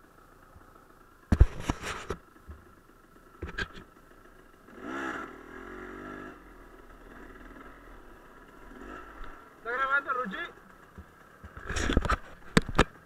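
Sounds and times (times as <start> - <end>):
dirt bike engine revving: 4.6 - 12.1.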